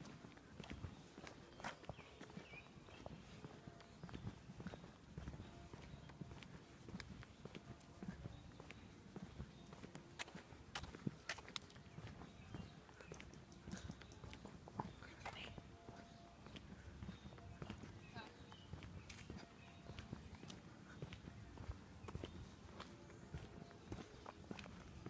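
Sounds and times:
footsteps on concrete: 0:00.0 - 0:25.0.

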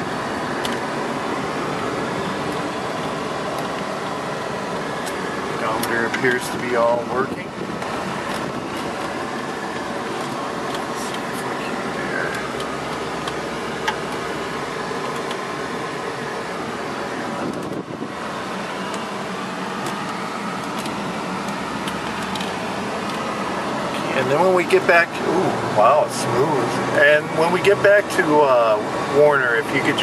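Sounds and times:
car cabin engine and road noise: 0:00.0 - 0:30.0.

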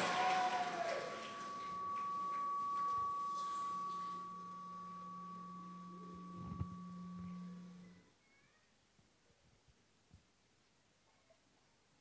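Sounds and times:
high steady tone: 0:00.0 - 0:08.0
low hum: 0:00.0 - 0:08.1.

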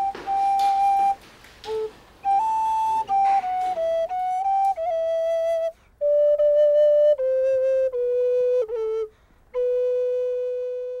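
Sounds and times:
end-blown flute playing: 0:00.0 - 0:11.0.

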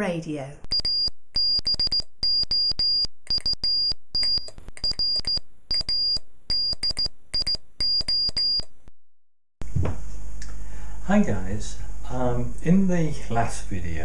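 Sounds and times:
morse code tone: 0:00.7 - 0:08.7.

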